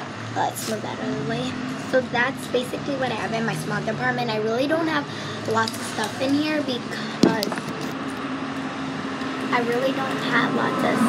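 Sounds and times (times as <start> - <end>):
car traffic hum: 0.0 - 11.0.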